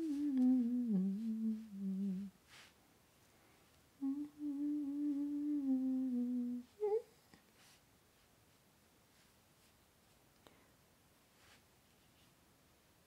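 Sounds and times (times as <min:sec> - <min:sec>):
woman humming a slow tune: 0:00.0 - 0:02.4, 0:04.0 - 0:07.4.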